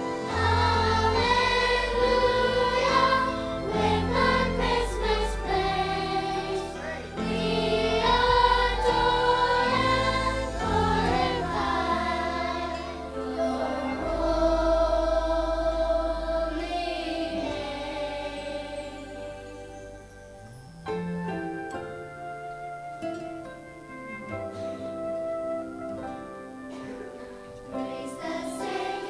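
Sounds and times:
choir singing sacred music: 0:00.0 - 0:20.7, 0:27.6 - 0:29.0
instrumental accompaniment: 0:00.0 - 0:29.0.

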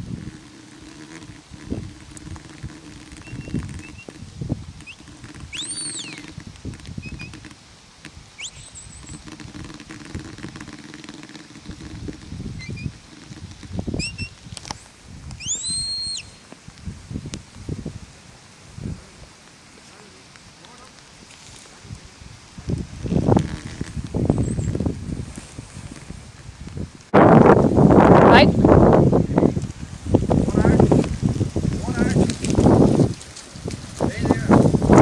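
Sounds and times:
wind rumble on microphone: 0:00.0 - 0:19.4, 0:20.8 - 0:35.0
shepherd's whistle: 0:04.8 - 0:06.2, 0:08.4 - 0:09.2, 0:14.0 - 0:14.4, 0:15.4 - 0:16.4.

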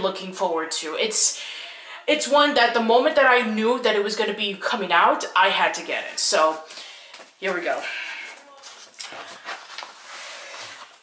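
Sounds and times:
packaging rustling and scraping: 0:08.4 - 0:11.0.

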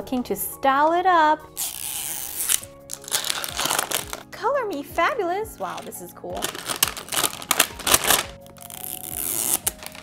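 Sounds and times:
plastic shrink-wrap crinkling: 0:01.6 - 0:04.8, 0:05.5 - 0:10.0.

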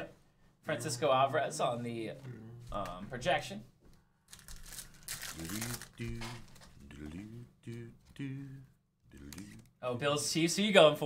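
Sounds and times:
foil wrapper crinkling and tearing: 0:04.3 - 0:06.7.

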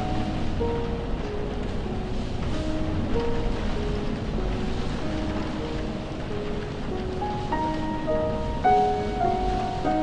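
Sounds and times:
slow piano melody: 0:00.0 - 0:10.0
steady rain falling: 0:00.0 - 0:10.0.

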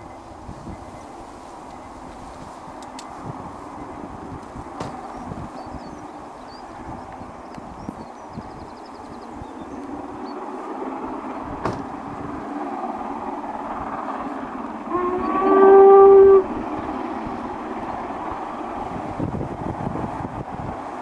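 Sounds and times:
passing train rushing: 0:00.0 - 0:21.0
steam whistle rising: 0:14.9 - 0:16.6.

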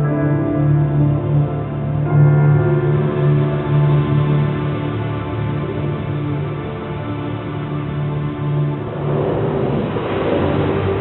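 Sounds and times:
ambient music: 0:00.0 - 0:11.0
loud rushing whoosh: 0:08.4 - 0:11.0.

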